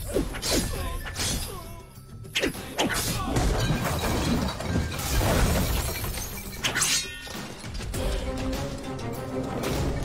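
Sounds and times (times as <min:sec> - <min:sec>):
falling debris: 0:03.3 - 0:06.6
wooden cart smashing: 0:03.3 - 0:06.6.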